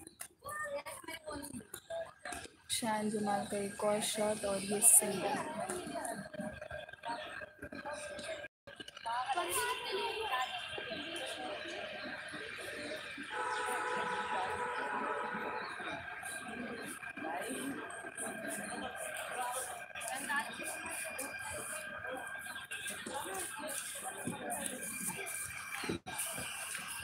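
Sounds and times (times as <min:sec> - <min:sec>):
indistinct voices talking: 0:00.0 - 0:27.0
faint steady tones: 0:01.9 - 0:27.0.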